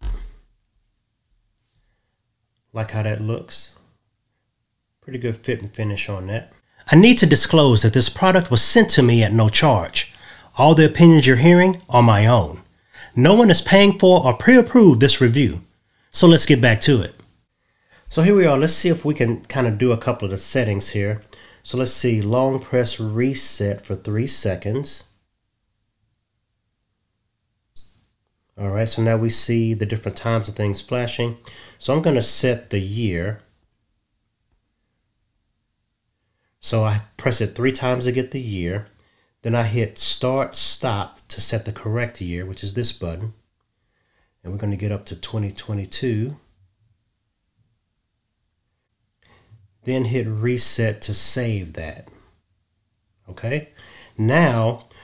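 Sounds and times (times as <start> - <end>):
short high watch beep: 27.8 - 28.1.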